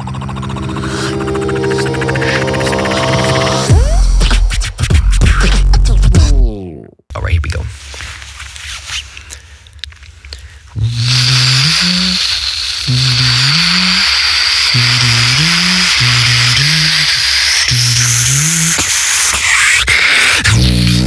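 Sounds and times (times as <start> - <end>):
hissing whistle-like synth tone: 0.0 - 4.2, 11.0 - 18.8
hummed bass melody: 0.0 - 6.9.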